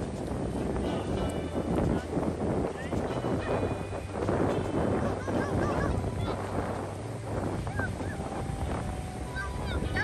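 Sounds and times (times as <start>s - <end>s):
surf: 0.0s - 10.0s
wind on microphone: 0.0s - 10.0s.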